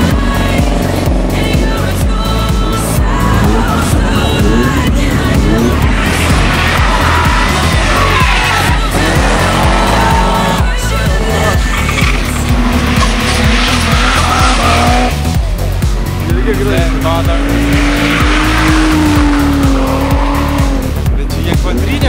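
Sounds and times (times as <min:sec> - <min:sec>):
background music with steady beat: 0:00.0 - 0:22.0
car engine revving: 0:00.0 - 0:22.0
tyres squealing: 0:05.5 - 0:15.2.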